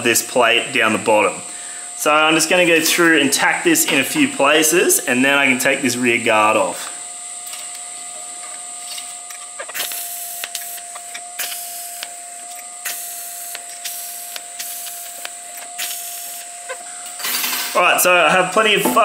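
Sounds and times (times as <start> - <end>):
welding arc hiss: 0.0 - 18.7
steady electrical hum: 0.0 - 19.0.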